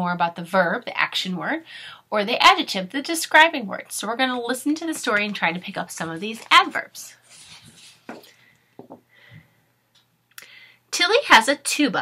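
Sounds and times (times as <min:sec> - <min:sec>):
faint handling of a book: 0:07.2 - 0:09.0.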